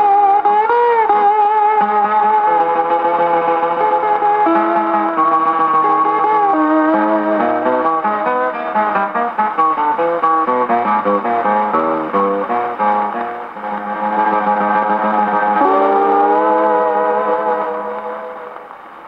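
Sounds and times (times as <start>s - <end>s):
guitar accompaniment: 0.0s - 19.0s
steel guitar solo: 0.0s - 19.0s.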